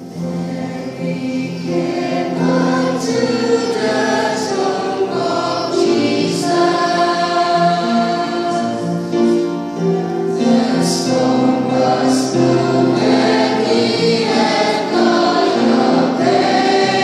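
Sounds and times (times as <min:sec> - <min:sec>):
choir singing a hymn: 0:00.0 - 0:17.0
instrumental accompaniment: 0:00.0 - 0:17.0.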